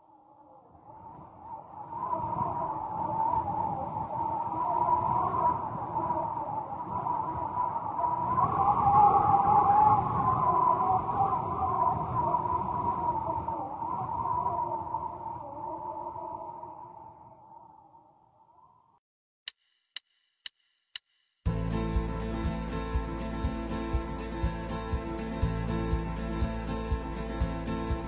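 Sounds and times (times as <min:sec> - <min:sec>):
howling wind: 0:00.0 - 0:19.0
low rumble: 0:21.5 - 0:28.0.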